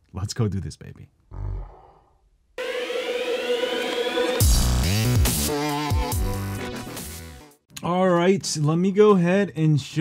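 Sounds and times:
dubstep music with rising synth: 2.6 - 7.4.

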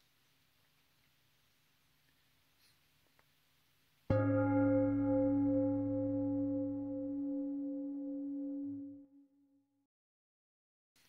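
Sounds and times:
meditation chime ringing: 4.1 - 9.3.

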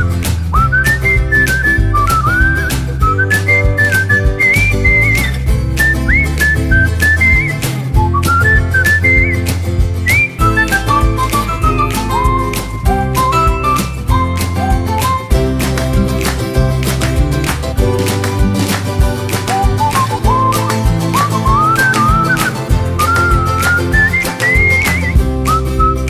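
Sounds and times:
whistled melody with beat: 0.0 - 26.0.

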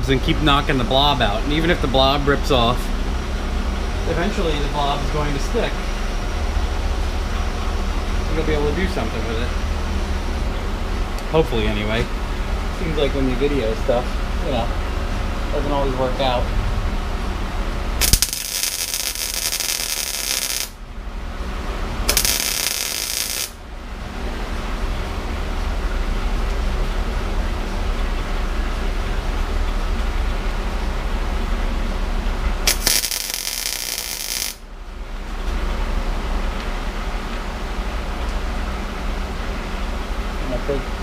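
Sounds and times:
steady low hum: 0.0 - 41.0
welder arc crackling: 18.0 - 20.8, 22.0 - 23.6, 32.7 - 34.6.

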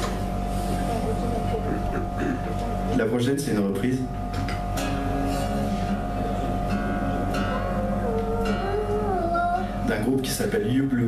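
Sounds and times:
acoustic guitar being retuned: 4.3 - 8.8.

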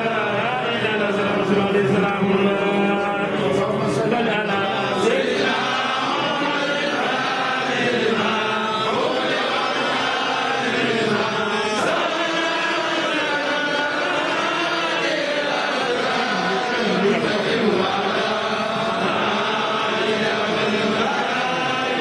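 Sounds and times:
crowd chanting religious chant: 0.0 - 22.0.

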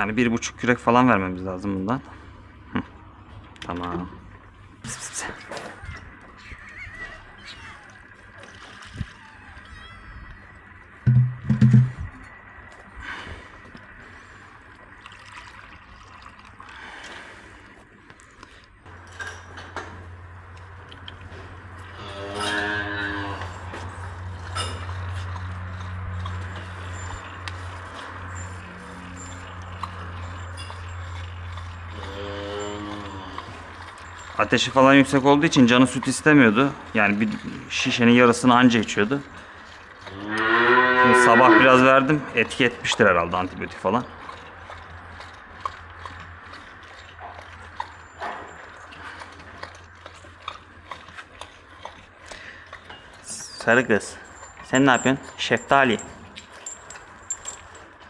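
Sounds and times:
calf bawling: 5.2 - 11.0, 21.8 - 58.0.

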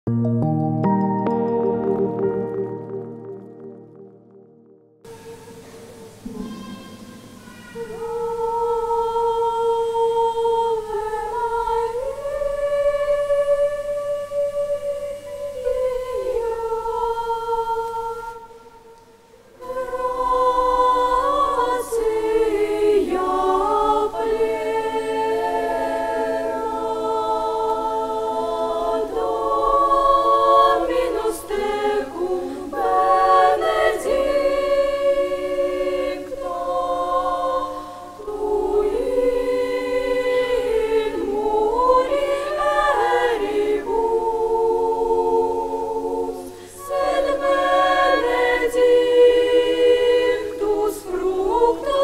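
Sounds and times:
children's choir singing: 5.0 - 52.0.

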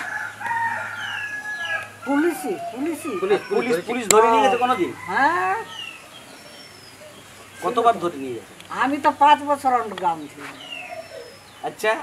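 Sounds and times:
rooster crowing: 0.0 - 6.4.

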